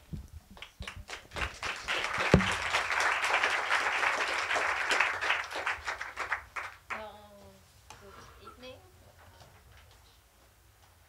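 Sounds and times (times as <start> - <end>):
audience applauding: 1.1 - 7.1
thump: 2.3 - 2.6.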